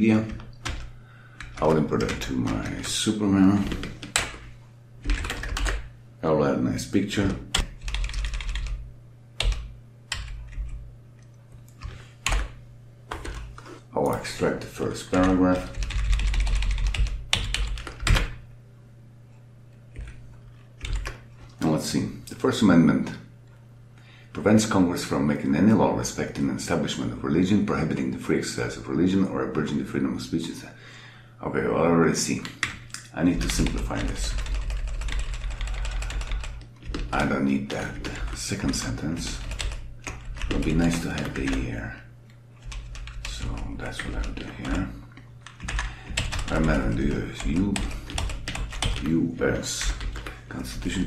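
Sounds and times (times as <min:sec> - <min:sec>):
steady low hum: 0:00.0 - 0:51.0
computer keyboard clicking: 0:05.0 - 0:05.8, 0:07.5 - 0:08.8, 0:09.4 - 0:10.8, 0:15.2 - 0:18.4, 0:20.8 - 0:21.2, 0:33.4 - 0:37.3, 0:38.0 - 0:41.6, 0:42.6 - 0:44.8, 0:45.4 - 0:46.8, 0:47.4 - 0:49.1, 0:49.8 - 0:50.4.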